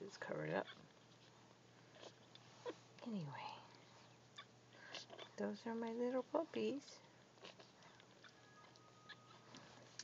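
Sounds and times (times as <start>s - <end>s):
puppies suckling faint clicks: 0.6s - 6.0s, 6.8s - 10.0s.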